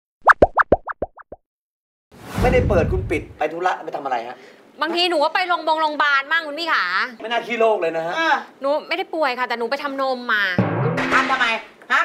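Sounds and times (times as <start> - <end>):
cartoon bloop pops: 0.2 - 1.4.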